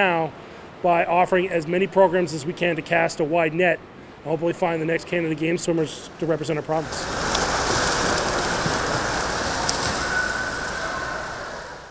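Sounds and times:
swimmers splashing in pool: 0:05.8 - 0:11.9.

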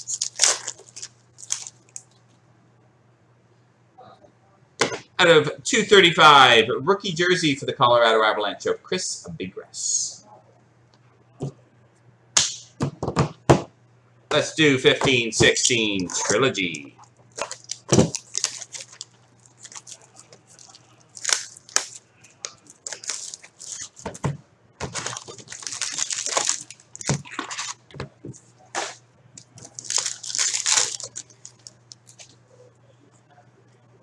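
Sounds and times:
shrink wrap tearing: 0:00.0 - 0:02.2, 0:16.0 - 0:24.1, 0:24.8 - 0:27.8, 0:29.6 - 0:32.3
faint steady hum: 0:00.0 - 0:34.0.

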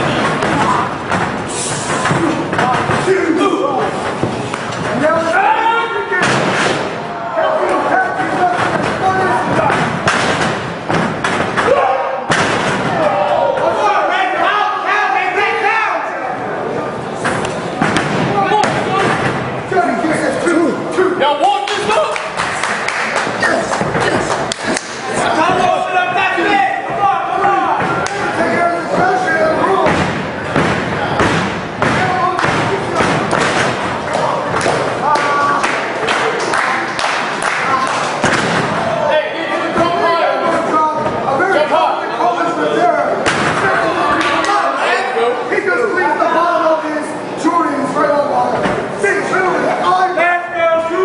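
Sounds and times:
people shouting: 0:00.0 - 0:04.0, 0:05.0 - 0:10.0, 0:11.4 - 0:16.2, 0:18.2 - 0:19.3, 0:23.4 - 0:36.0
loud shout: 0:11.6 - 0:12.3, 0:12.9 - 0:16.3.

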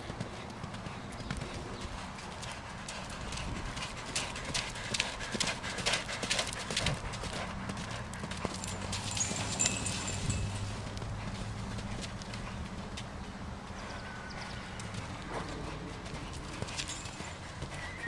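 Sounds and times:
horse hoofbeats on sand: 0:00.0 - 0:18.0.

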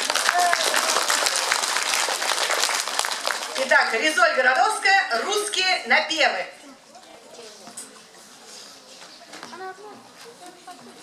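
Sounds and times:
faint voices talking quietly: 0:06.6 - 0:11.0.

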